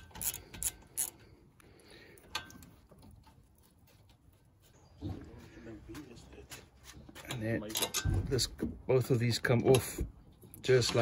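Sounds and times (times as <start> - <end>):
socket ratchet clicking: 0.0 - 1.2.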